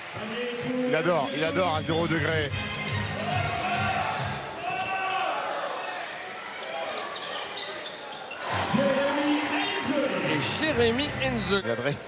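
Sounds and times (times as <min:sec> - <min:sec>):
indoor arena crowd noise: 0:00.0 - 0:12.0
man's voice: 0:00.2 - 0:02.6, 0:08.6 - 0:12.0.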